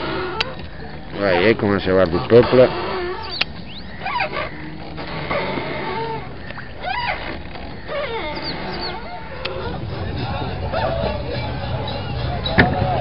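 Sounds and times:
birds calling: 0:00.0 - 0:13.0
low rumble: 0:09.3 - 0:13.0.

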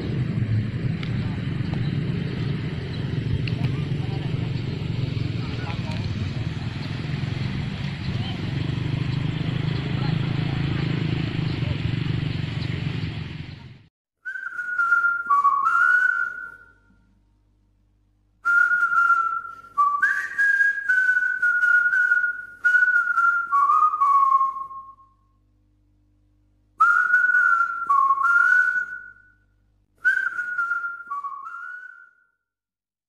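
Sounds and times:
person whistling a tune: 0:14.2 - 0:16.9, 0:18.4 - 0:25.2, 0:26.8 - 0:29.4, 0:30.0 - 0:32.4.

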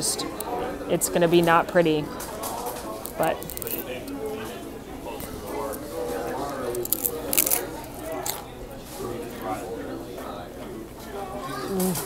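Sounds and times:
chips crunching as chewed: 0:02.7 - 0:04.1, 0:05.1 - 0:08.5.

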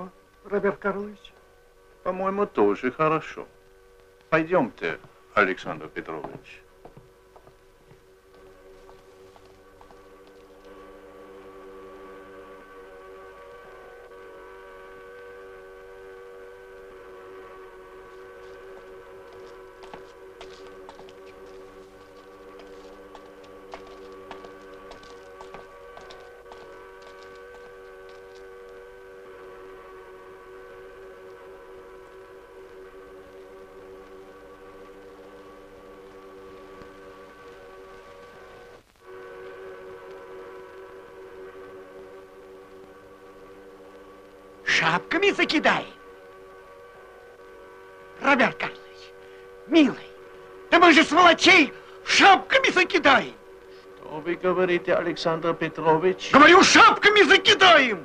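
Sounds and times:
factory steam whistles chord: 0:08.0 - 0:58.0.

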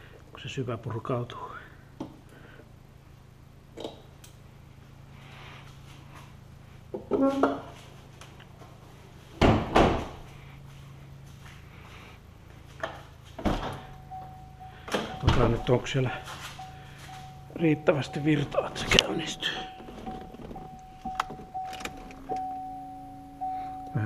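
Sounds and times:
car door opening: 0:13.4 - 0:23.9
steady electronic tone: 0:13.8 - 0:24.0
car hood shutting: 0:14.8 - 0:15.8, 0:18.7 - 0:22.8.

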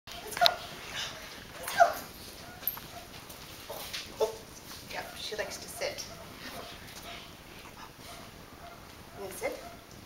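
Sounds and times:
dog barking: 0:02.4 - 0:03.2, 0:05.0 - 0:07.3, 0:08.1 - 0:09.9.

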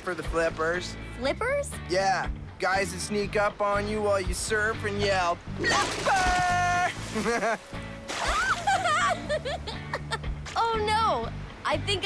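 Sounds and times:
background music: 0:00.0 - 0:12.0
characters laughing: 0:05.7 - 0:10.3.

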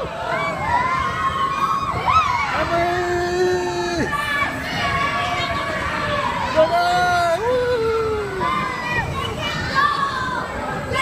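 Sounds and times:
riders shouting and screaming: 0:00.0 - 0:11.0
roller coaster train moving: 0:00.0 - 0:11.0.

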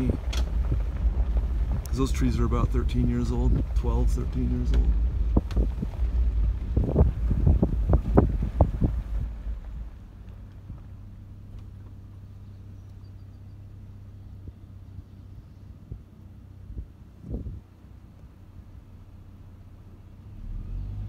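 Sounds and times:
knocks and rattles: 0:00.0 - 0:11.7
engine idle hum: 0:00.0 - 0:21.0
vehicle rumbling inside cab: 0:00.0 - 0:21.0.

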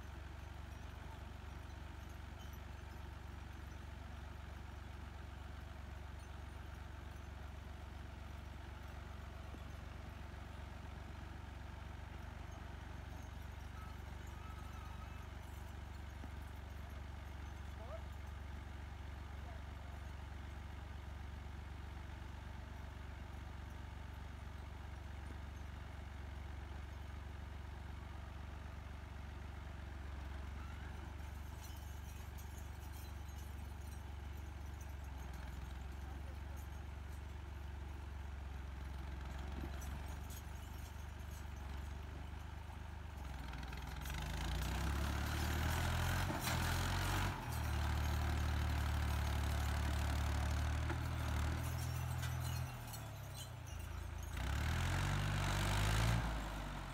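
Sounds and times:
tractor diesel engine: 0:00.0 - 0:56.9.

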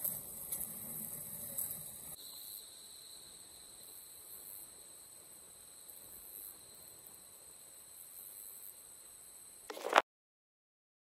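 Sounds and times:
insects chorus: 0:00.0 - 0:10.0
lower insect whine: 0:00.0 - 0:10.0.

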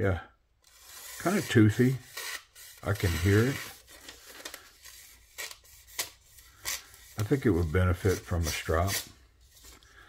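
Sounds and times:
knife slicing through paper: 0:00.7 - 0:09.8.

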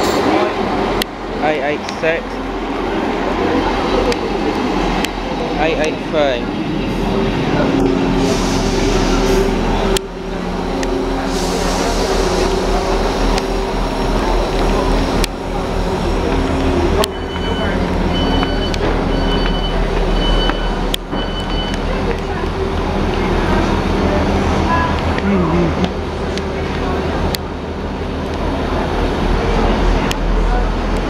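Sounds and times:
diesel train engine idling: 0:00.2 - 0:31.0
platform chatter: 0:00.4 - 0:31.0.

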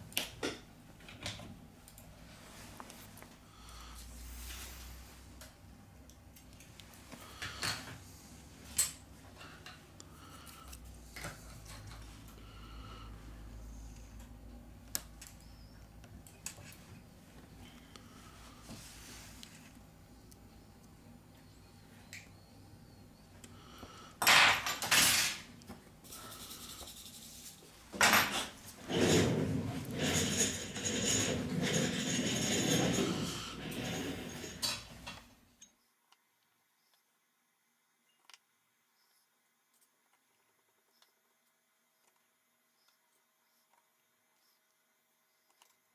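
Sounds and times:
loud clatter of small parts: 0:24.2 - 0:25.5, 0:26.1 - 0:35.2
scraping and rattling of parts: 0:24.2 - 0:25.5, 0:26.1 - 0:35.3.

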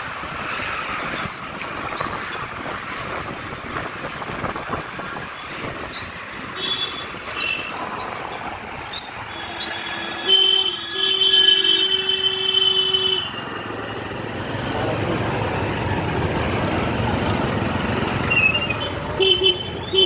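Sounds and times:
motorcycle engine and road noise: 0:00.0 - 0:20.0
street traffic: 0:00.0 - 0:20.0
vehicle horn honking: 0:10.0 - 0:13.4, 0:19.2 - 0:20.0.

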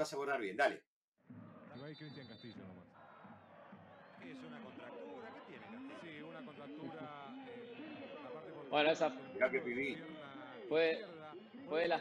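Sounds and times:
stadium crowd chanting and singing: 0:01.3 - 0:12.0.

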